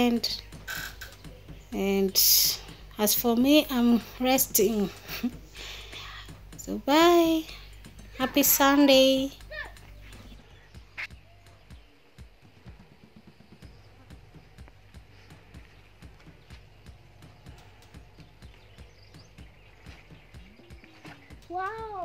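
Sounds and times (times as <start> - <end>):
footsteps on garden ground: 13.4 - 22.0.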